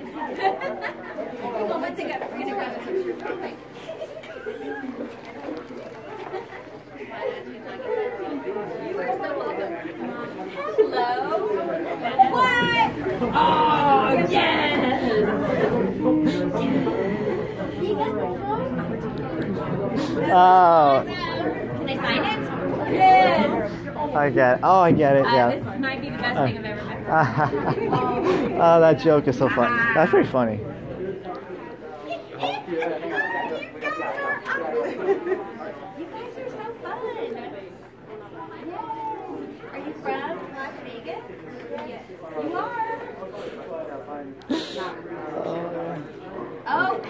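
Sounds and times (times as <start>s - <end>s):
indistinct crowd chatter: 0.0s - 47.0s
people talking: 0.0s - 47.0s.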